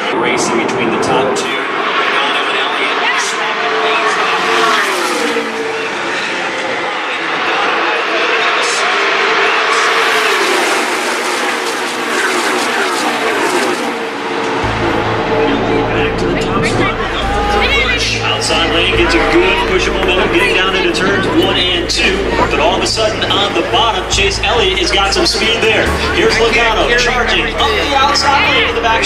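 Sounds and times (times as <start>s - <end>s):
race cars passing at speed: 0.0s - 29.0s
low rumble: 14.3s - 27.7s.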